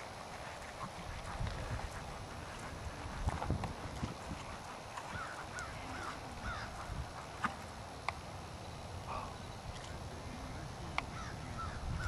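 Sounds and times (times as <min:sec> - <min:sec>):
horse hoofbeats on arena footing: 0:00.0 - 0:07.7.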